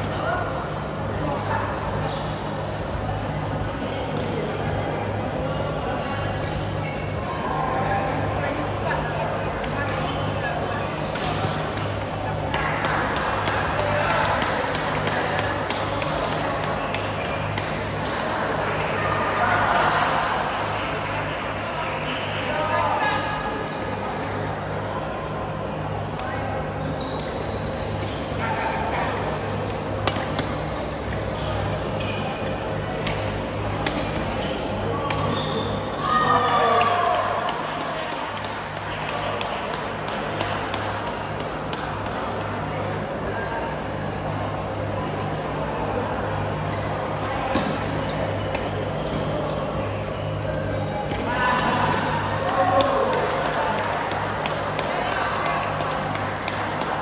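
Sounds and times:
racket hitting shuttlecock: 33.8s - 34.2s.

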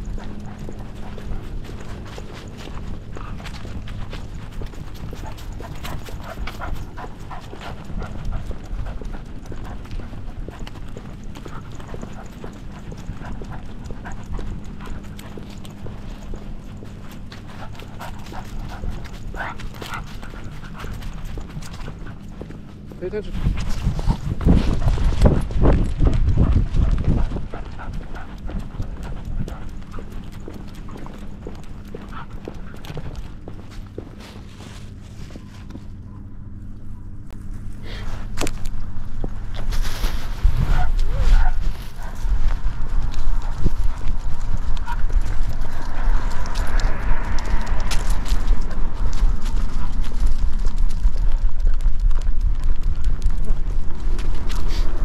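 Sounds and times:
low rumbling rush: 0.0s - 55.0s.

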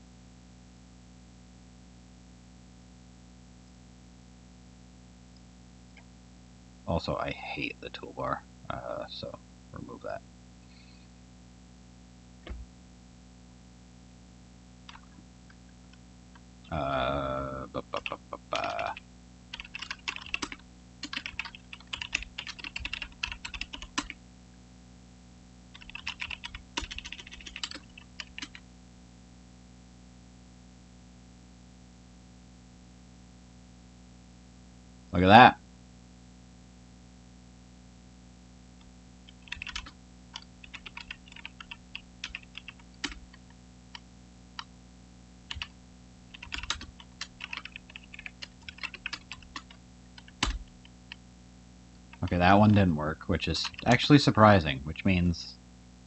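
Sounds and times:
steady low hum: 0.0s - 56.0s
typing on computer keyboard: 18.0s - 24.2s, 25.8s - 28.6s, 39.3s - 43.4s, 45.5s - 45.7s, 46.3s - 50.9s, 53.6s - 53.9s.

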